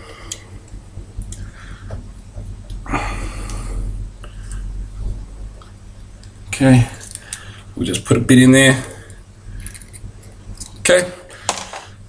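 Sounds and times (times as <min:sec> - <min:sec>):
low handling rumble: 0:00.6 - 0:08.7.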